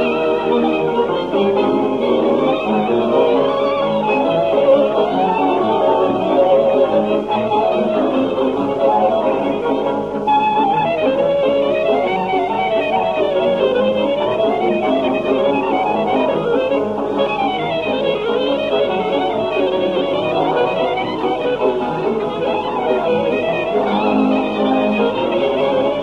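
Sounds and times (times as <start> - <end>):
band accompaniment: 0.0 - 26.0
fast violin melody: 0.0 - 26.0.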